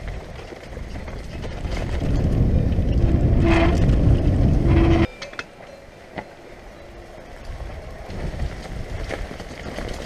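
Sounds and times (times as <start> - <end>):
wind buffeting microphone: 0.0 - 5.1, 7.2 - 10.0
bike tyres and frame rattling: 0.0 - 10.0.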